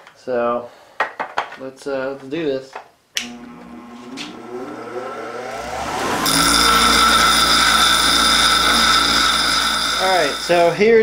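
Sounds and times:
bench grinder motor whine: 3.2s - 11.0s
metal grinding with ringing tone: 3.4s - 11.0s.

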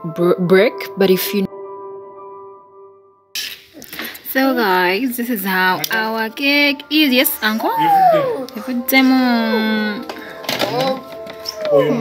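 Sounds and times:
background music: 0.0s - 12.0s
voices speaking: 3.8s - 12.0s.

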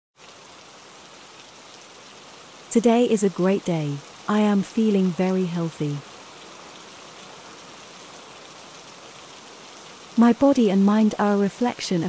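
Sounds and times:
rain hissing: 0.2s - 12.0s.

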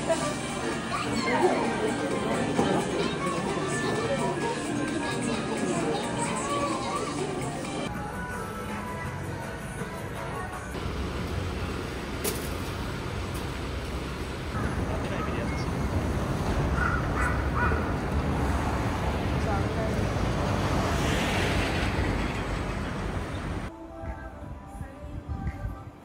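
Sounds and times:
crowd noise: 0.0s - 8.0s
steady traffic: 0.0s - 25.8s.

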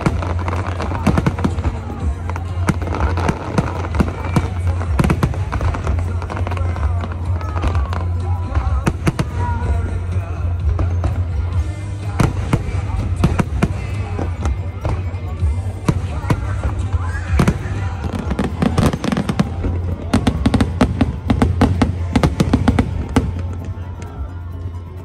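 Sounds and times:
crowd voices: 0.0s - 25.0s
fireworks bangs and crackles: 0.0s - 25.0s
music: 0.0s - 25.0s.

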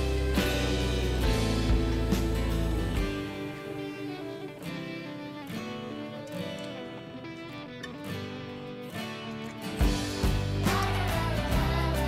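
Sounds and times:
background music with plucked guitar: 0.0s - 12.0s.

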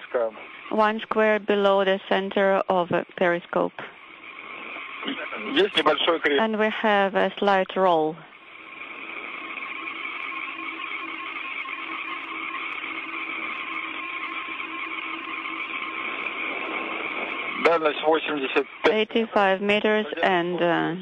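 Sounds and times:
voice over radio: 0.0s - 3.8s, 4.6s - 8.2s, 16.6s - 21.0s
faint steady hum tones: 0.0s - 21.0s
radio channel hiss: 0.0s - 21.0s.

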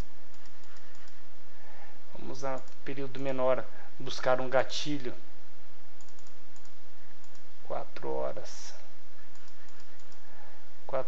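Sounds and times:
light clicks of computer keys: 0.0s - 1.2s, 2.4s - 3.0s, 6.0s - 8.1s, 9.2s - 10.3s
steady background hiss: 0.0s - 11.0s.

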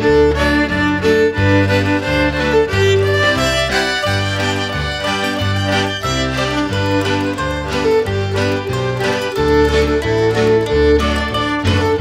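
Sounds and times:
fiddle melody: 0.0s - 12.0s
guitar accompaniment: 0.0s - 12.0s
low bass notes: 0.0s - 12.0s.

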